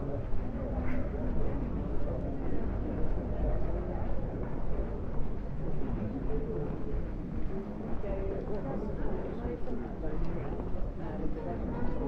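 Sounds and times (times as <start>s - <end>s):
steady low rumble: 0.0s - 8.4s
faint voices of people: 0.0s - 12.0s.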